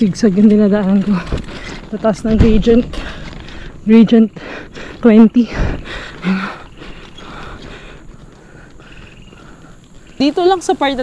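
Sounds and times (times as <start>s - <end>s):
bicycle creaking and clicking: 0.0s - 11.0s.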